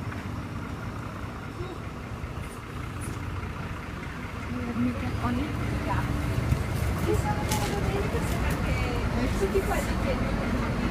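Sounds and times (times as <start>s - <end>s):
bus engine idling: 0.0s - 10.9s.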